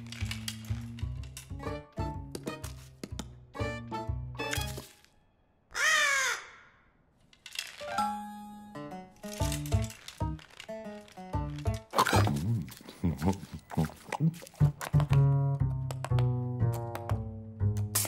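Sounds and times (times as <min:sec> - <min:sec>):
cartoon crow cawing: 0:05.7 - 0:06.8.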